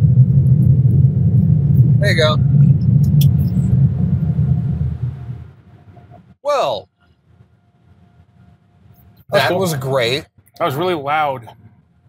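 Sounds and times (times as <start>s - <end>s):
car wash machinery rumbling: 0.0s - 6.8s.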